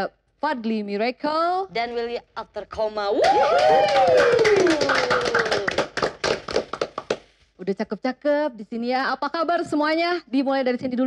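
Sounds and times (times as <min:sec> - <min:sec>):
cheering shouts: 0:03.2 - 0:05.5
people clapping: 0:03.2 - 0:07.4.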